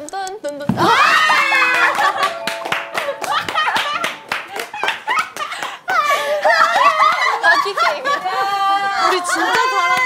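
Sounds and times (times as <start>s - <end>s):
people cheering and shouting: 0.8s - 7.7s
people laughing: 0.9s - 2.4s, 3.0s - 10.0s
group clapping: 1.3s - 7.4s, 9.3s - 10.0s.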